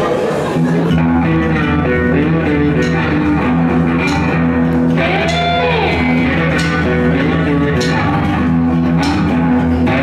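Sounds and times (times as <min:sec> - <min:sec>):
bass guitar: 0:00.0 - 0:10.0
electric guitar: 0:00.0 - 0:10.0
drum and cymbal hits: 0:02.7 - 0:10.0.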